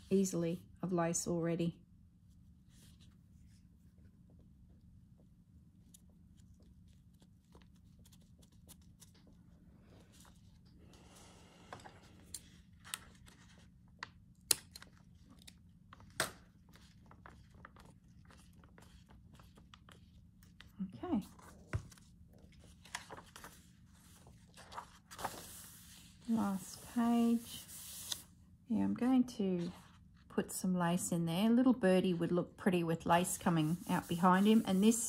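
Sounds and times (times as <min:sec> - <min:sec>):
paper pages rustling: 0:05.8 - 0:28.2, 0:33.5 - 0:35.0.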